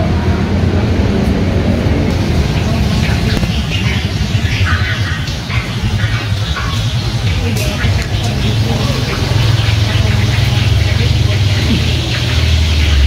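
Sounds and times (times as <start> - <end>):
road traffic rumble: 0.0 - 13.0
voices: 0.0 - 13.0
music: 2.1 - 13.0.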